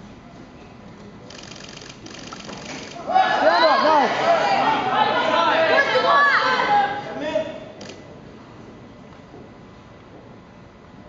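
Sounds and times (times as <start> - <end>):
rapid mechanical clicking: 1.3 - 3.0.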